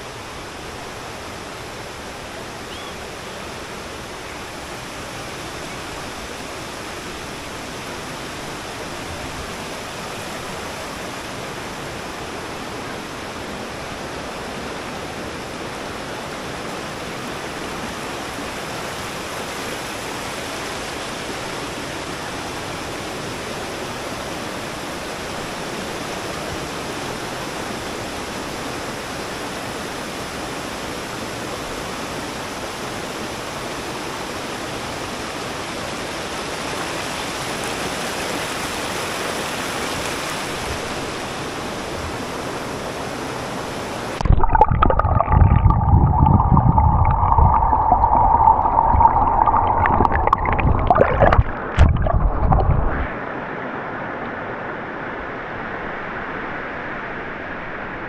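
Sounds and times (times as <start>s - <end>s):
river rushing over boulders: 0.0s - 58.0s.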